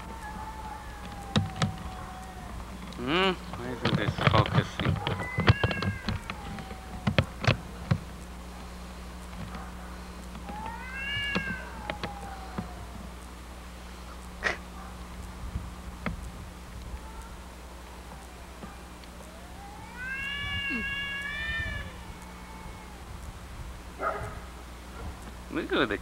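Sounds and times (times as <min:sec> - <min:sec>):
cats yowling: 0:00.0 - 0:26.0.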